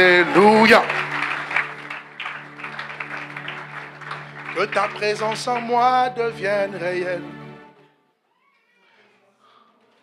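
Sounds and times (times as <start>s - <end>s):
congregation applauding: 0.0s - 7.2s
held chord background music: 0.0s - 8.0s.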